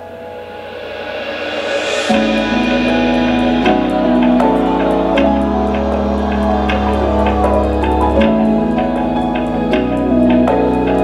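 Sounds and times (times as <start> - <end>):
rising swell: 0.0 - 11.0
held keyboard notes: 2.1 - 11.0.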